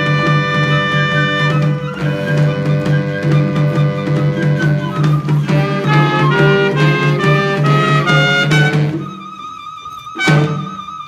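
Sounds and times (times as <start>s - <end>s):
wind band playing: 0.0s - 11.0s.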